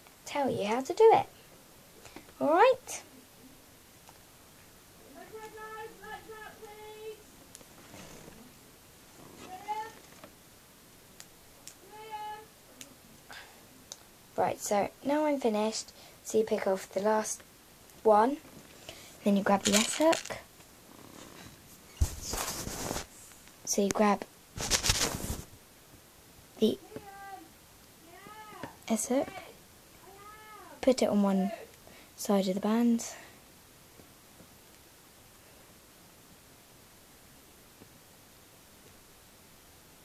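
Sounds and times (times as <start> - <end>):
room noise: 0.0 - 40.0
cat meowing: 30.0 - 30.8.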